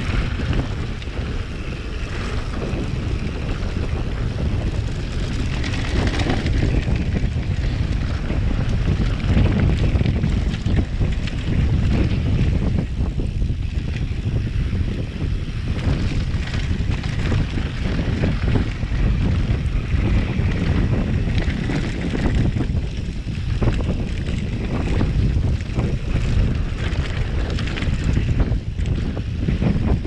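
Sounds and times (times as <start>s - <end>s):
bike knocks and rattles: 0.0s - 30.0s
tyres rumbling on dirt: 0.0s - 30.0s
wind rushing over microphone: 0.0s - 30.0s.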